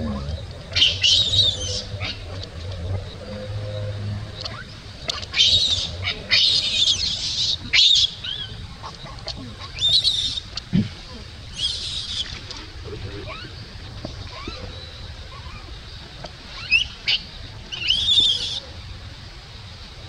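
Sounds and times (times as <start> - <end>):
infant monkey screaming: 11.5 - 12.3.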